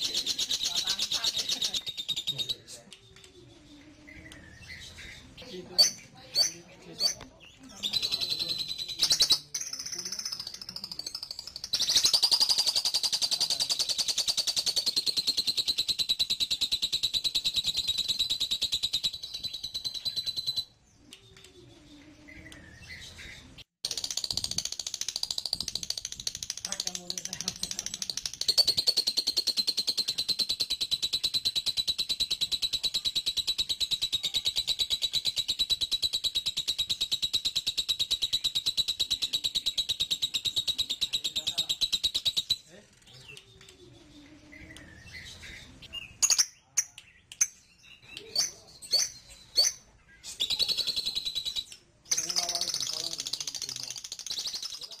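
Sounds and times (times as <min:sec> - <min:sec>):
bird high-pitched trill: 0:03.3 - 0:26.0, 0:28.2 - 0:42.7, 0:47.9 - 0:55.0.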